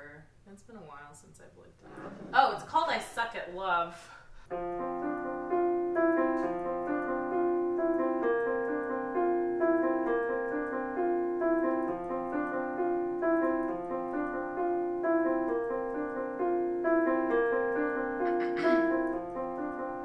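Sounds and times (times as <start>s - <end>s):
keyboard piano chords: 4.5s - 20.0s.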